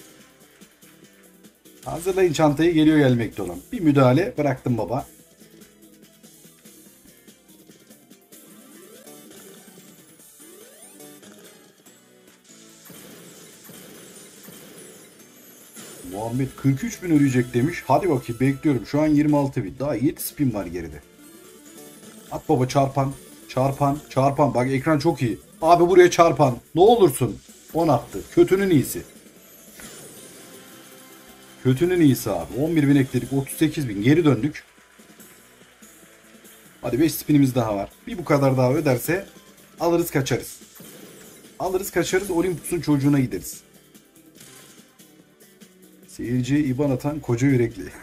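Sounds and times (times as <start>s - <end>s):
bright game music: 0.0s - 48.0s
glittery burst effect: 12.4s - 16.7s, 40.1s - 43.3s.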